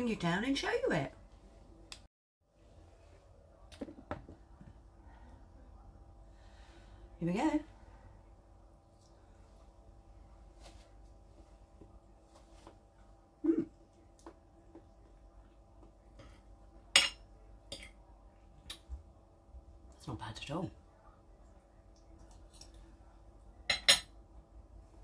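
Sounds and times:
faint room hum: 0.0 - 25.0.

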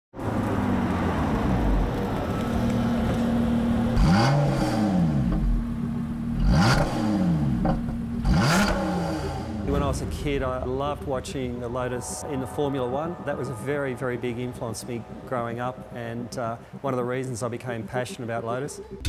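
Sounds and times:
car engine revving hard: 1.1 - 5.7, 6.3 - 9.7.

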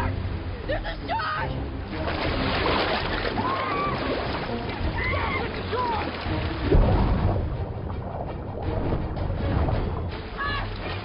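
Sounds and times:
low rumbling music: 0.0 - 11.0
water rushing: 0.0 - 11.0.

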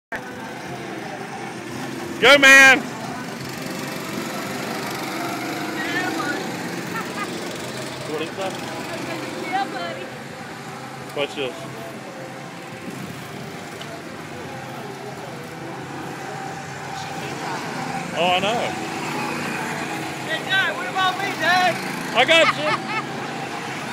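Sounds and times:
go-kart engines: 0.1 - 23.9.

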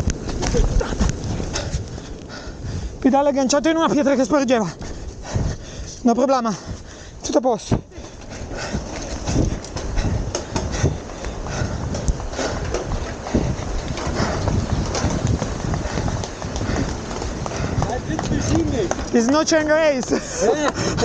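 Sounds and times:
bicycle rattling: 0.0 - 21.0
bicycle tyres clattering over metal grating: 7.6 - 21.0.

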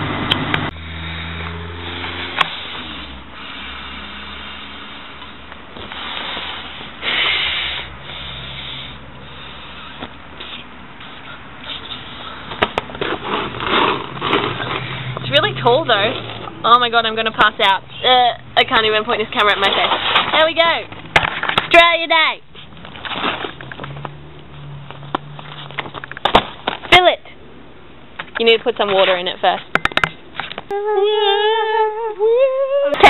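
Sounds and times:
person blowing hard breaths: 2.6 - 12.6.

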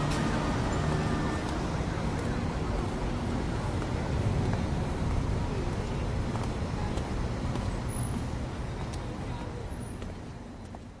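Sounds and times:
general hiss of noise: 0.0 - 11.0
low rumble of traffic: 0.0 - 11.0.

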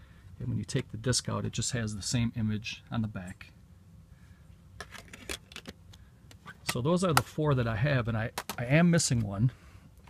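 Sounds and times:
faint room hum: 0.0 - 10.0
plastic disc case clicks and taps: 8.3 - 8.6.

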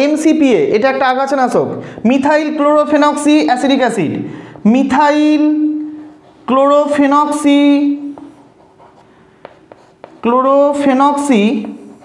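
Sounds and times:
chalk scratching on chalkboard: 8.0 - 12.0
chalk tapping on chalkboard: 8.0 - 12.0.

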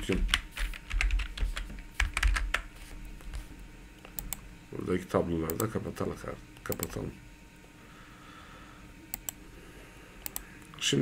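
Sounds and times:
computer keyboard keys clicking: 0.0 - 2.7.

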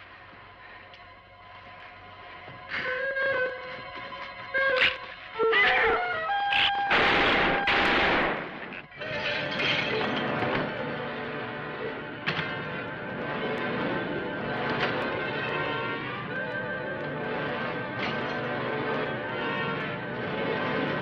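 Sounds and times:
dramatic film score music: 0.0 - 21.0
sharp crack: 6.6 - 8.9.

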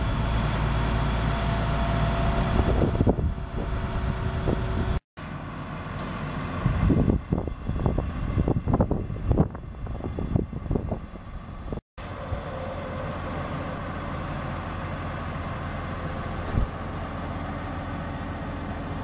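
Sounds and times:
heavy diesel engine running: 0.0 - 19.0.

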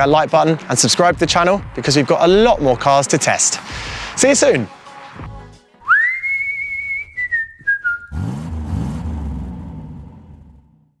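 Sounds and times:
whistled note sliding up: 5.9 - 8.3
low revving rumble: 8.1 - 11.0.

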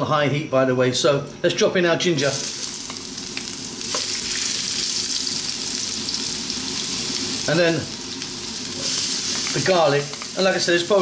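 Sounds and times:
ginger sizzling in hot oil: 2.2 - 11.0.

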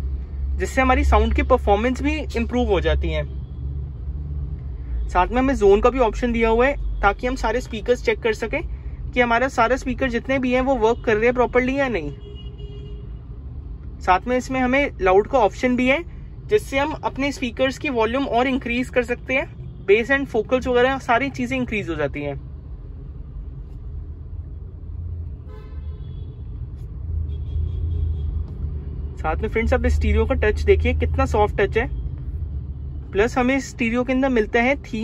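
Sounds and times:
vehicle rumble: 0.0 - 35.0
car horn toot: 12.0 - 13.2, 25.5 - 26.4, 27.3 - 28.4.

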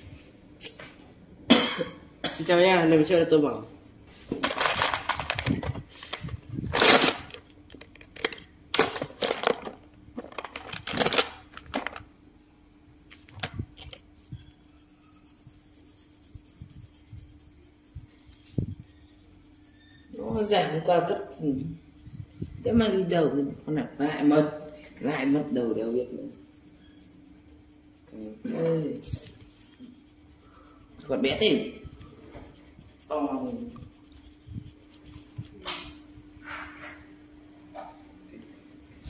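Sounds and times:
faint steady hum: 0.0 - 39.0
pencil tapping and rubbing paper: 14.8 - 23.3, 25.0 - 36.0.

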